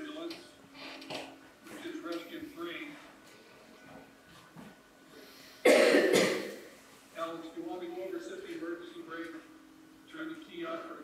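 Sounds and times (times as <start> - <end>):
person coughing: 5.6 - 6.7.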